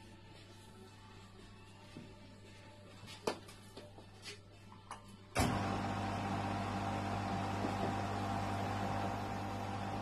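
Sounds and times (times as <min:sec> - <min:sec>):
lathe motor humming: 0:05.4 - 0:10.0.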